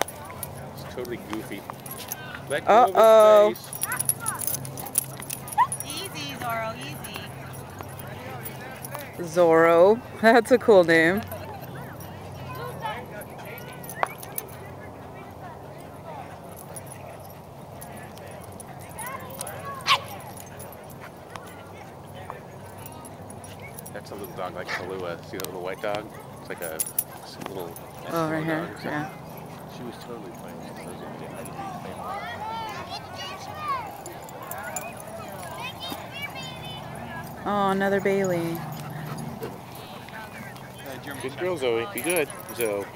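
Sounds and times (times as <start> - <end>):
distant people talking: 0.0 - 42.9
dogs playing roughly: 3.6 - 9.0, 26.1 - 42.9.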